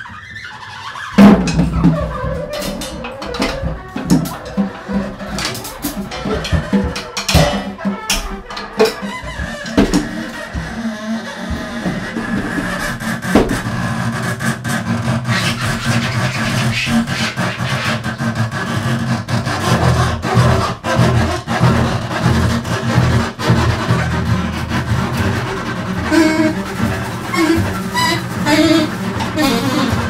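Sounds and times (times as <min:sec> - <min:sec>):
clicks and knocks on drums: 0:01.1 - 0:30.0.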